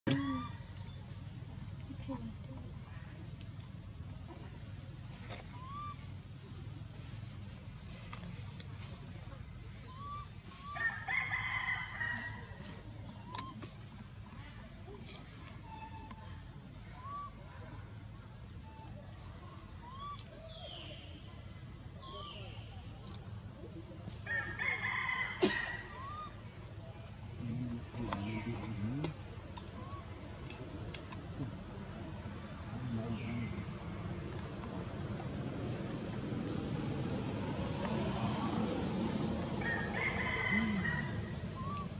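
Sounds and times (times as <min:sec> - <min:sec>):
low background rumble: 0:00.1 - 0:41.9
small birds chirping: 0:12.8 - 0:24.4, 0:25.9 - 0:41.9
rooster crowing: 0:39.6 - 0:41.3.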